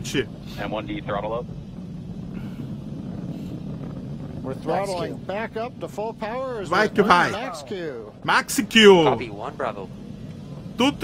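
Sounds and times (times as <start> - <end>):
rocket low rumble: 0.0 - 11.0.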